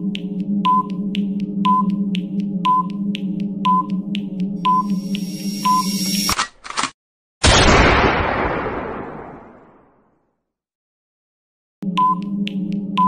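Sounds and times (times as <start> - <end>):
synth drone: 4.6 - 6.3
short beeps: 4.6 - 6.4
rising noise swell: 4.8 - 6.3
loud burst: 7.4 - 10.1.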